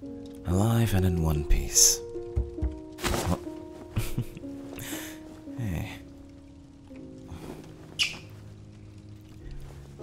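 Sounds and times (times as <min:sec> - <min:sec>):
soft piano music: 0:00.0 - 0:10.0.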